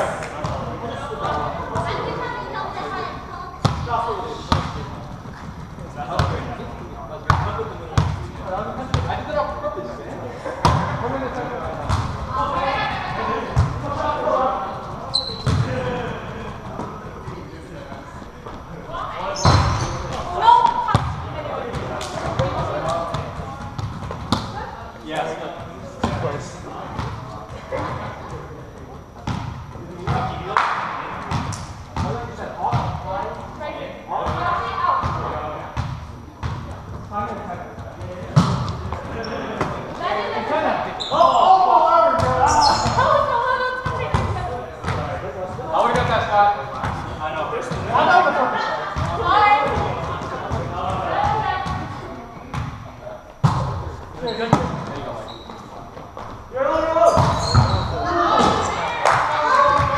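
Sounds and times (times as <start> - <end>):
players' voices and calls: 0.0 - 59.9.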